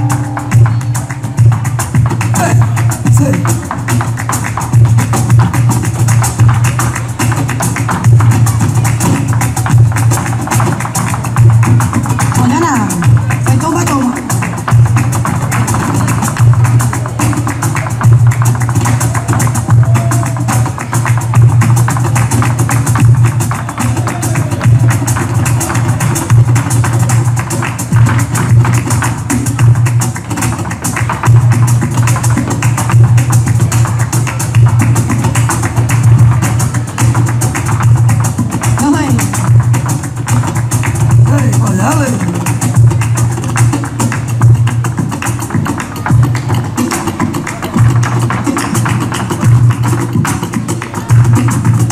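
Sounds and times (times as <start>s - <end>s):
flamenco guitar music: 0.0s - 51.9s
sharp percussive strikes: 0.0s - 51.9s.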